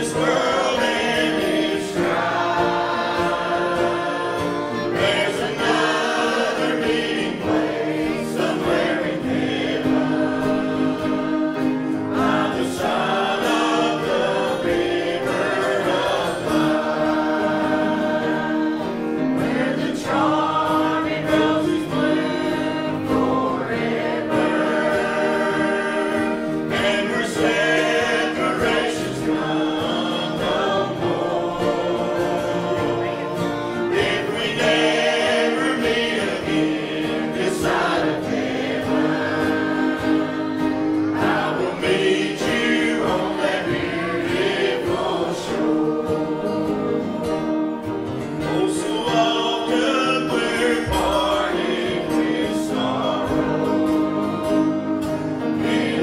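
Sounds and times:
group singing a hymn: 0:00.0 - 0:56.0
sustained instrumental accompaniment: 0:00.0 - 0:56.0.

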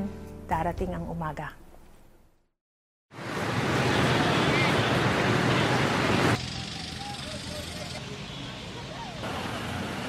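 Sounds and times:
loud rush of noise: 0:03.1 - 0:10.0
traffic hum: 0:03.1 - 0:10.0.

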